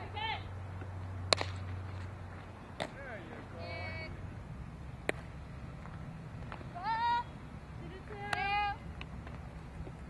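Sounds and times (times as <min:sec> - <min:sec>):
steady background rumble: 0:00.0 - 0:10.0.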